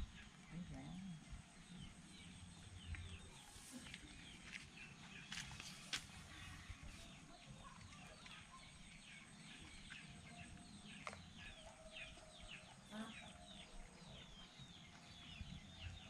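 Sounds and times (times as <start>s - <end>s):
birds chirping: 0.0s - 16.0s.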